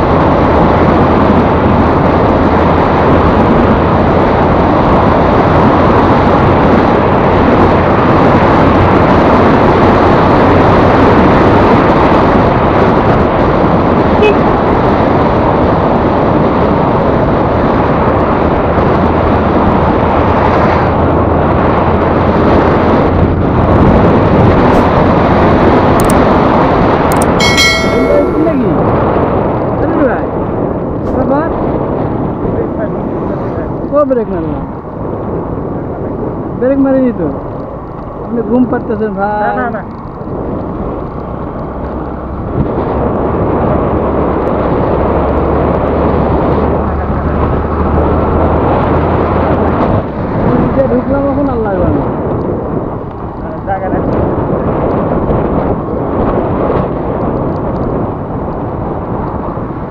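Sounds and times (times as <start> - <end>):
wind and road noise: 0.0 - 59.9
high ringing sound: 27.1 - 28.8.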